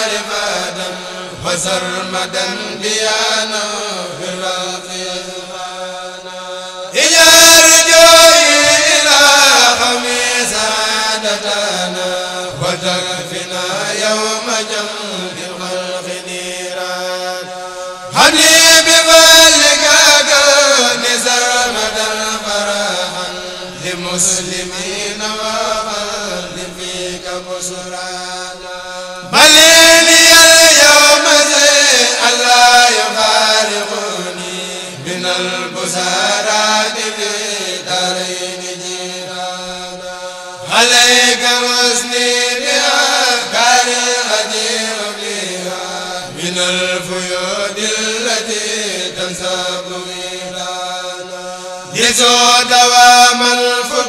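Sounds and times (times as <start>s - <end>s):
men chanting religious poem: 0.0s - 54.0s.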